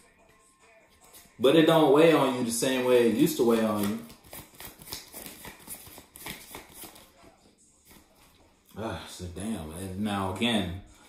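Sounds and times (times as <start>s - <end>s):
cards clicking and tapping: 3.2s - 7.1s.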